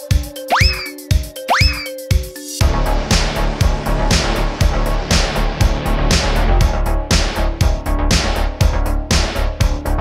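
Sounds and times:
music with deep kick drum: 0:00.0 - 0:10.0.

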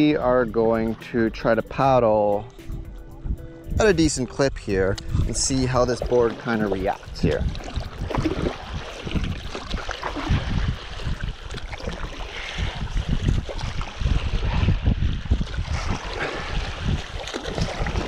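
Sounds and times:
wind buffeting microphone: 0:00.0 - 0:18.0
water rushing and splashing: 0:04.0 - 0:18.0.

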